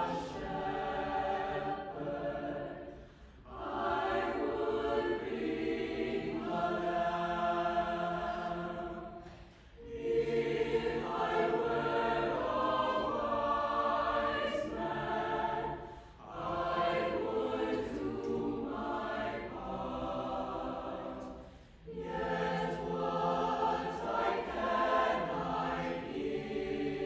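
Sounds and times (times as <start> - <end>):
mixed choir singing: 0.0 - 27.0.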